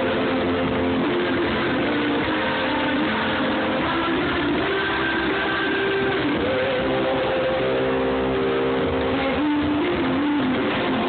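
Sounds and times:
live rock band: 0:00.0 - 0:11.0.

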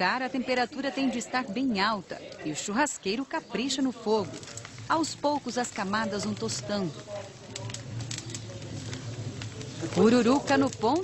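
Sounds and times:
pork skin sizzling and popping: 0:00.0 - 0:11.0.

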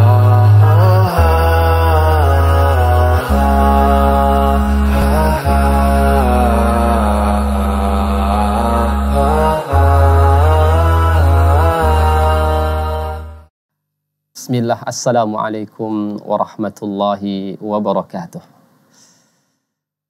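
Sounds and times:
low drone: 0:00.0 - 0:13.4
person chanting melodic lines: 0:00.0 - 0:13.4.

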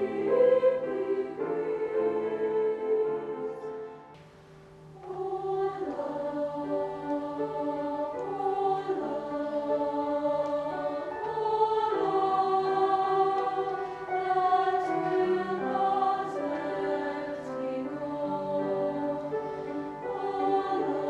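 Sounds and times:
women's choir singing: 0:00.0 - 0:04.0, 0:04.9 - 0:21.0.

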